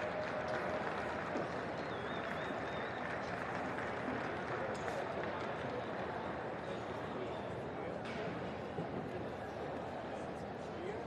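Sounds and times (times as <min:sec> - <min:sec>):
crowd hubbub indoors: 0:00.0 - 0:11.0.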